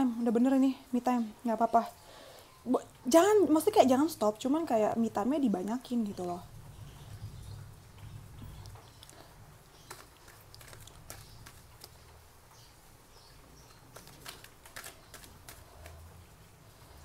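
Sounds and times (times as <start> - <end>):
playing cards being handled: 9.8 - 12.1, 13.6 - 16.1.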